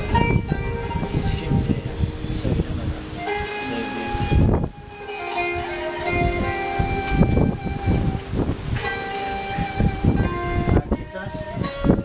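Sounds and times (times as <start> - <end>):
ney flute music: 0.0 - 12.0.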